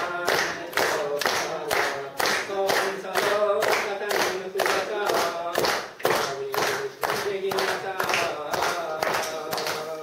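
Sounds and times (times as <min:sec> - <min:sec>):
crowd clapping in time: 0:00.0 - 0:10.0.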